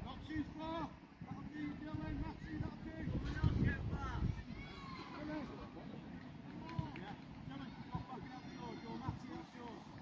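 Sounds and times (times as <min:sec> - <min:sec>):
distant voices calling: 0:00.0 - 0:10.0.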